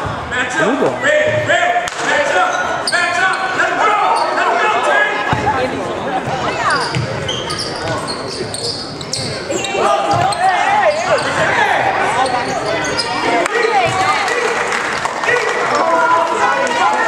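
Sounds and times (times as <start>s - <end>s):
sneakers squeaking on floor: 2.5s - 4.5s, 6.2s - 14.3s
people calling out: 9.5s - 17.0s.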